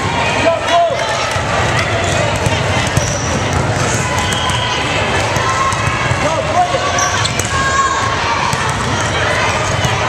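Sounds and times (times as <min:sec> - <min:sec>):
people calling and talking: 0:00.0 - 0:10.0.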